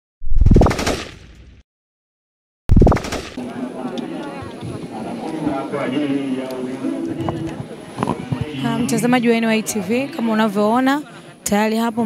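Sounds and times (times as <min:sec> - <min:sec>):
murmur of people outdoors: 0:03.3 - 0:12.0.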